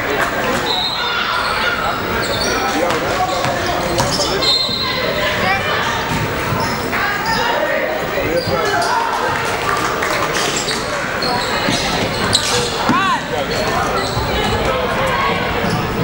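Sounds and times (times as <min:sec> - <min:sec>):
chatter and calls of people: 0:00.0 - 0:16.0
basketball bouncing on hardwood floor: 0:02.9 - 0:04.2.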